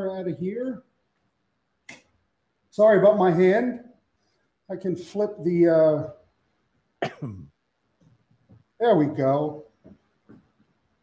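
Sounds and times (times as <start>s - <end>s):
man speaking: 0.0s - 0.9s, 2.7s - 3.9s, 4.7s - 6.2s, 8.8s - 9.7s.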